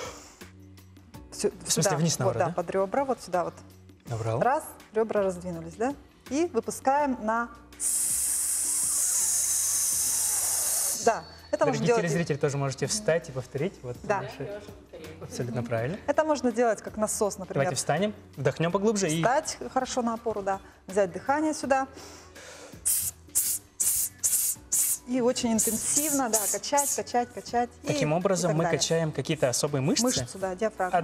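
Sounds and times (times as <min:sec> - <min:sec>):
woman hissing through teeth: 0:07.8 - 0:11.4, 0:22.8 - 0:27.1.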